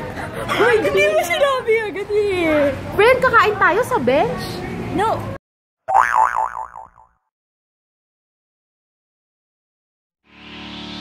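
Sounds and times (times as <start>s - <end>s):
cartoon boing: 5.9s - 7.3s.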